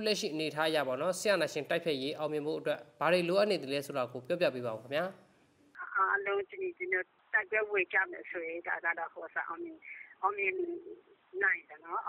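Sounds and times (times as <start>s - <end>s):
woman talking over telephone: 5.8s - 12.0s.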